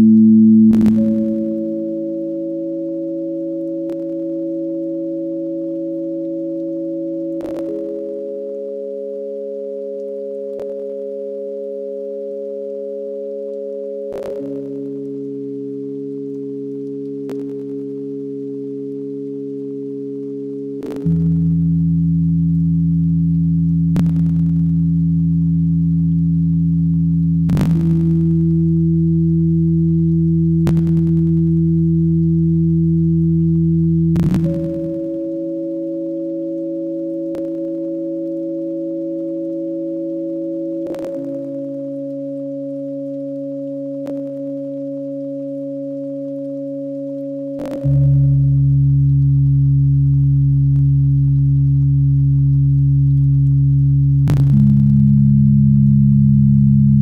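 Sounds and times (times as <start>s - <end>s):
ambient electronic drone music: 0.0s - 57.0s.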